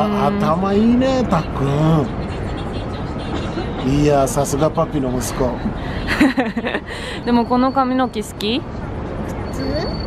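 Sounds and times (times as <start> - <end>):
man speaking: 0.0 - 2.2, 3.8 - 5.8
city traffic noise: 0.0 - 10.0.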